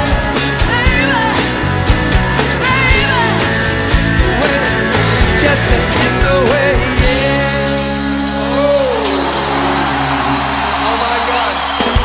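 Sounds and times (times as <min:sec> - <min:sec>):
live rock-blues band: 0:00.0 - 0:12.0.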